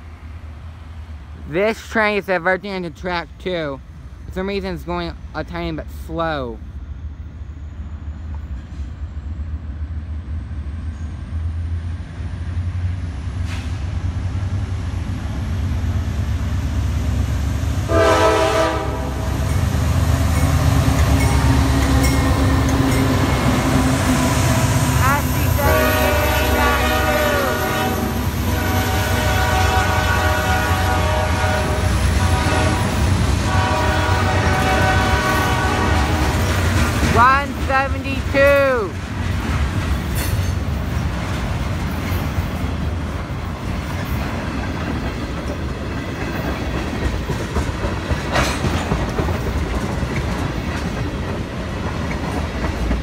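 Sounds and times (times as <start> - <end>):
diesel locomotive rumble: 0.0 - 53.0
train horn blasts: 17.9 - 19.6, 23.5 - 36.4
freight cars rolling: 19.3 - 53.0.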